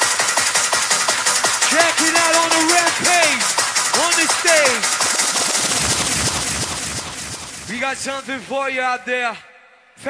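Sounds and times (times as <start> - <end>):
fast drum roll: 0.0 - 8.8
hardcore rave music: 0.0 - 9.1
mc shouting: 1.6 - 4.9
swooping pitched sample: 3.2 - 8.6.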